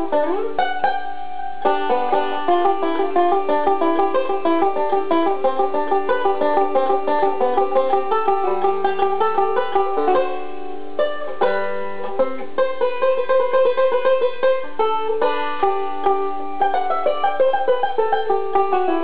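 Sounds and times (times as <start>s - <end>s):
resonator banjo picking: 0.0s - 19.0s.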